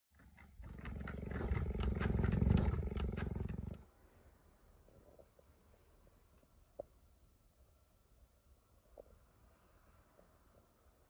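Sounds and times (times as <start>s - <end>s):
big cat pulsing vocalisation: 0.2s - 3.8s.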